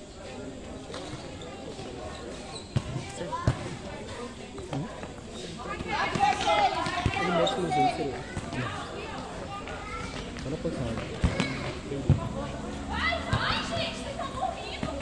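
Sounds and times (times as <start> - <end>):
ball kicked on concrete court: 2.8 - 3.8, 10.3 - 12.3.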